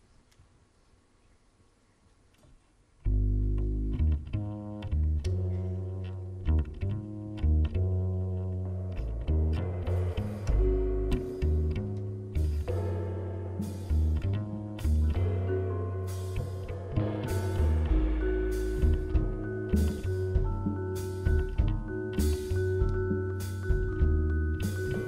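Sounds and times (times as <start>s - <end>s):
double bass plucked: 3.0s - 25.0s.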